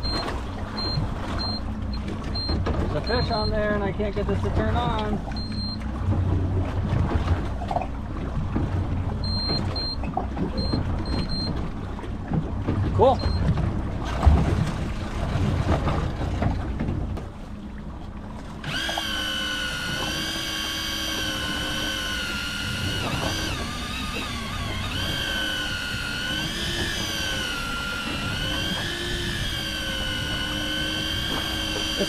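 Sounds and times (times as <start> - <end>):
water noise: 0.0 - 32.0
wind: 0.0 - 32.0
electric fishing reel motor whine: 18.6 - 32.0.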